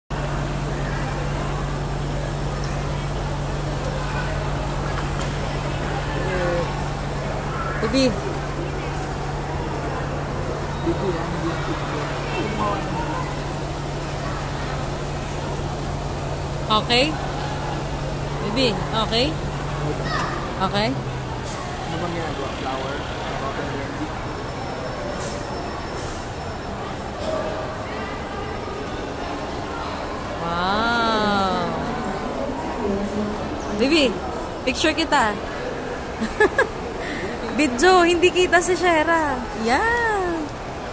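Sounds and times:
faint voices: 0:00.1 - 0:40.9.

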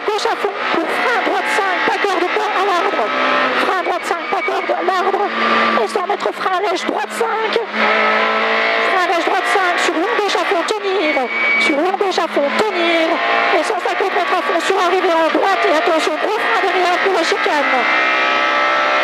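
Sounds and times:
rally car engine at full throttle: 0:00.0 - 0:19.0.

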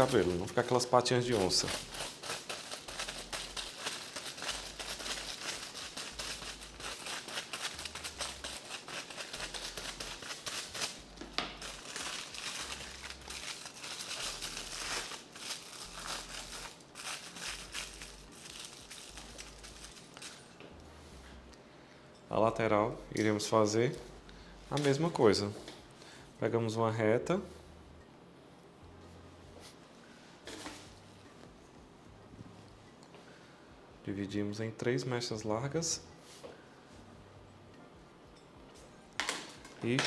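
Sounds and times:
brush scraping across foil: 0:00.0 - 0:20.5
aluminium foil crinkling: 0:00.0 - 0:20.6.

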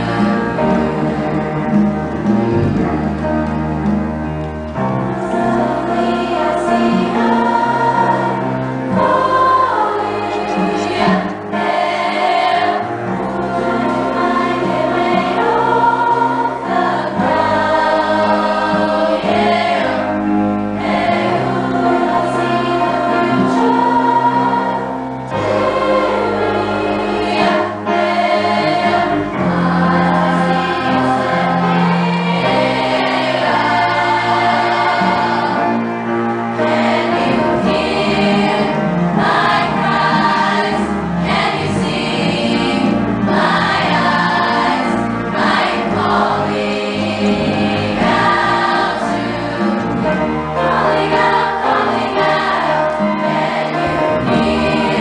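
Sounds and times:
girls' choir singing: 0:00.0 - 0:04.0, 0:04.7 - 0:55.0.

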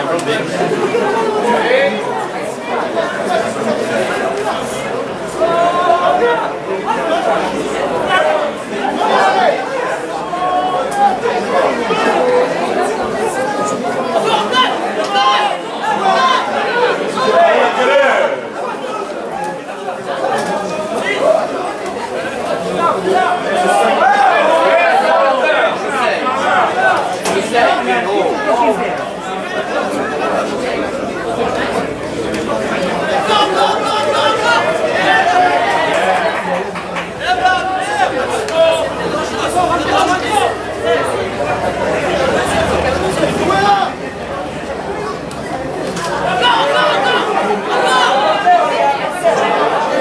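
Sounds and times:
crowd chattering and calling out: 0:00.0 - 0:50.0
people talking over one another: 0:00.0 - 0:50.0.

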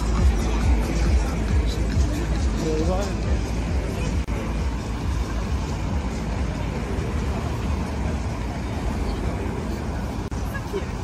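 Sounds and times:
faint voices of passers-by: 0:00.0 - 0:11.0
road traffic rumble: 0:00.0 - 0:11.0.

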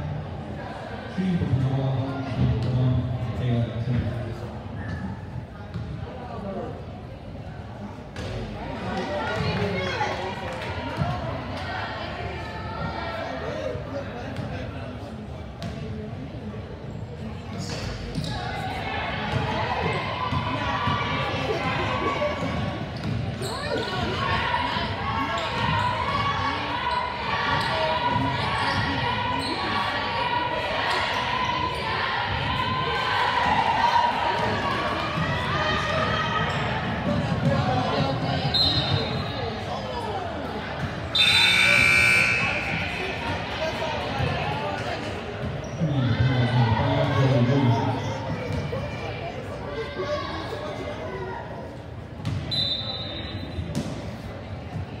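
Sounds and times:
sneakers squeaking: 0:16.9 - 0:21.4, 0:22.3 - 0:24.5, 0:25.2 - 0:30.0, 0:35.9 - 0:37.6, 0:38.4 - 0:39.6, 0:40.8 - 0:43.2, 0:45.4 - 0:46.2, 0:52.2 - 0:54.9.

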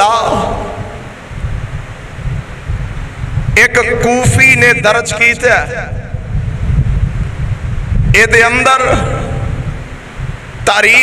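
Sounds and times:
faint steady hiss: 0:00.0 - 0:11.0
air buffeting microphone: 0:00.2 - 0:11.0.

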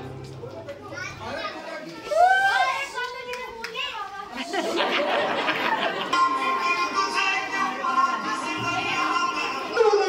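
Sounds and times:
children's voices chattering: 0:00.0 - 0:10.0
background music: 0:05.8 - 0:10.0.

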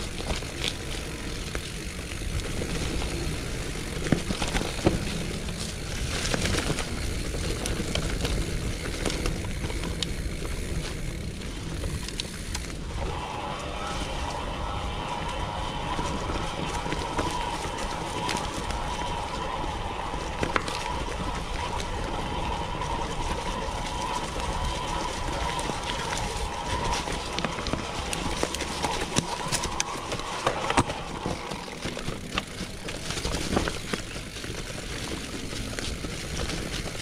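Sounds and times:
bike clicks and rattles: 0:00.0 - 0:37.0
bike tyres on dirt: 0:00.0 - 0:37.0
low wind rumble: 0:00.0 - 0:37.0.

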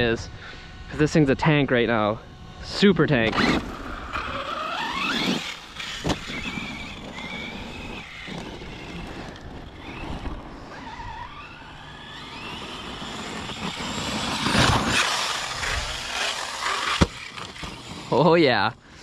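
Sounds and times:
electric motor whining: 0:00.7 - 0:19.0
tyres churning over dirt: 0:03.3 - 0:18.7.

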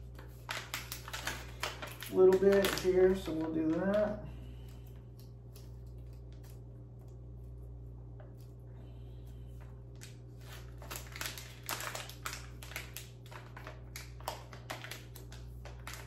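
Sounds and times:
plastic packet crinkling: 0:00.0 - 0:04.2, 0:09.9 - 0:16.0
steady low room hum: 0:00.0 - 0:16.0.

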